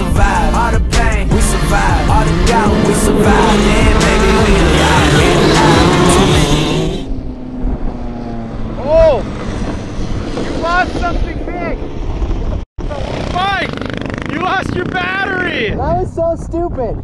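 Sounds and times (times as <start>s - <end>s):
kart engine revving: 0.2s - 15.5s.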